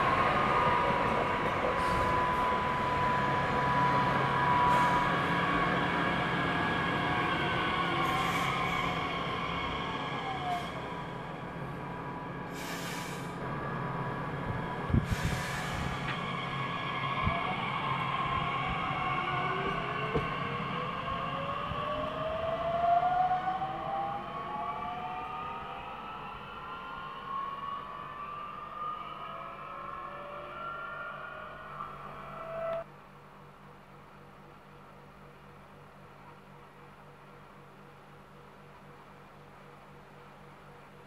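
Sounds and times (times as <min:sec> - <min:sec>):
electric train inverters whining: 0:00.0 - 0:32.9
short hisses: 0:12.5 - 0:13.4.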